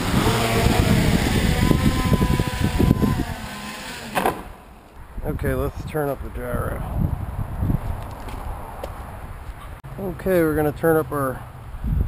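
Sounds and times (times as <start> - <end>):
quadcopter motors whining: 0.0 - 4.8.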